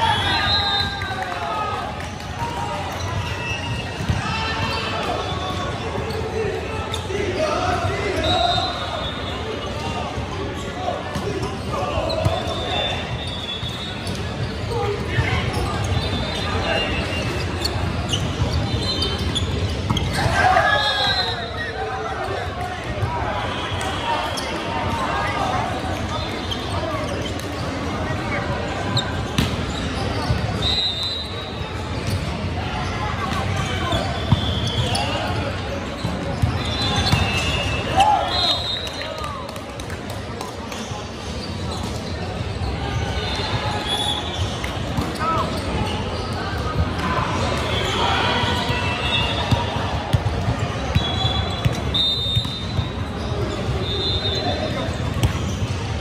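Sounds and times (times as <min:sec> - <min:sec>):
sneakers squeaking on court: 0:02.9 - 0:07.1, 0:07.8 - 0:21.7, 0:23.0 - 0:38.6, 0:40.7 - 0:56.0.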